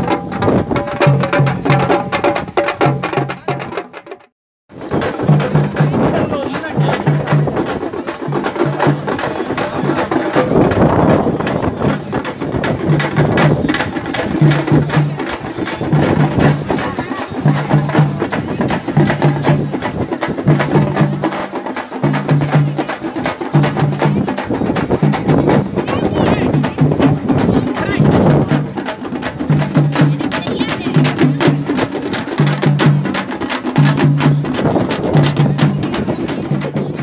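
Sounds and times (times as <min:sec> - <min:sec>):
frame drums beaten with sticks: 0:00.0 - 0:37.0
crowd voices: 0:04.8 - 0:37.0.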